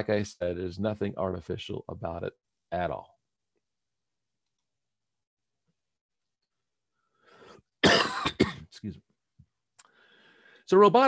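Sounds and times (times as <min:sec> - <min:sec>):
man coughing: 0:07.8 - 0:08.8
faint intake of breath: 0:09.9 - 0:10.7.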